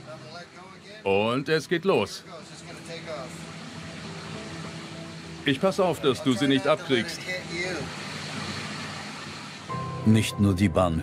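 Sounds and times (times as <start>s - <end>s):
ventilation fans hissing: 0.0s - 10.3s.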